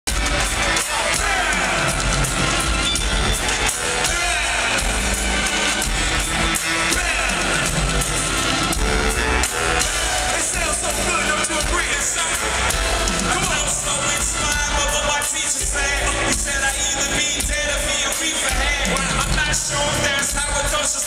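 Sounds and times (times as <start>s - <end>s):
live hip-hop band with heavy bass: 0.1s - 21.0s.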